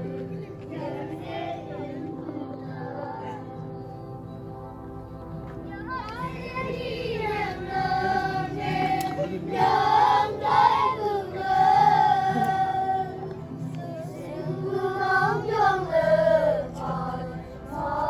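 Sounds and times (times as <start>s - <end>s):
children singing: 0.0s - 4.0s, 5.8s - 18.0s.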